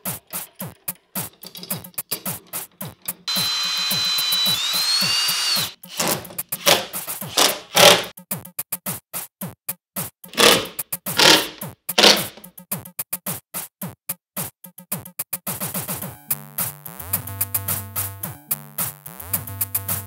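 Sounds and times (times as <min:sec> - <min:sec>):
cordless drill whine: 0:03.3 - 0:06.3.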